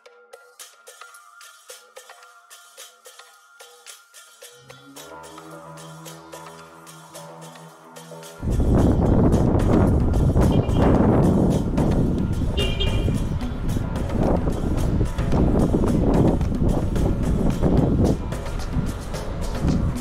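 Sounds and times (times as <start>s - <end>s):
music: 0.0s - 20.0s
wind rushing over microphone: 8.4s - 20.0s.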